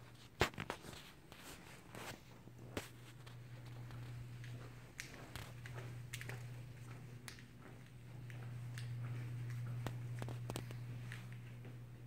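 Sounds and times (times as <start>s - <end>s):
footsteps on tile floor: 0.0s - 12.0s
steady low hum: 0.0s - 12.0s.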